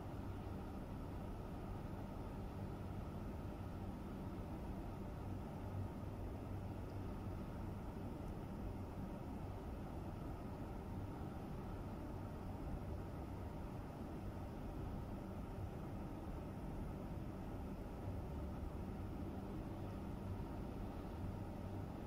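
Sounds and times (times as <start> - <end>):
faint hum: 0.0 - 22.0.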